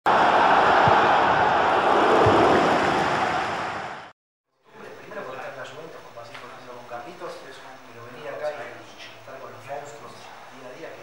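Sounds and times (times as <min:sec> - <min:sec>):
low thud: 0:02.2 - 0:02.6.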